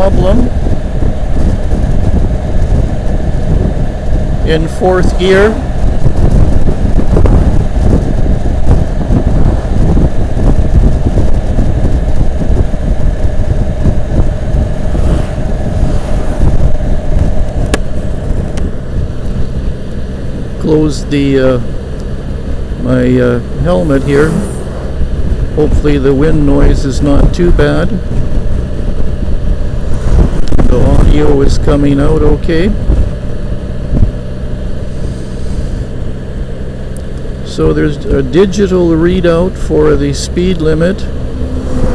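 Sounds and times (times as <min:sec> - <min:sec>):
motorcycle engine cruising: 0:00.0 - 0:41.9
road noise: 0:00.0 - 0:41.9
wind rushing over microphone: 0:00.0 - 0:41.9.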